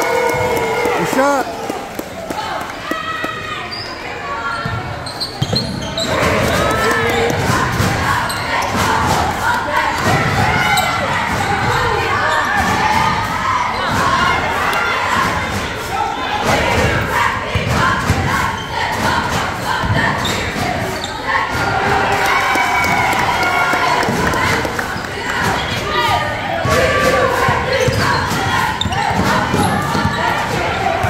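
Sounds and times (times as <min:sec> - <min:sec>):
young voices shouting and cheering: 0:00.0 - 0:05.1, 0:06.0 - 0:31.0.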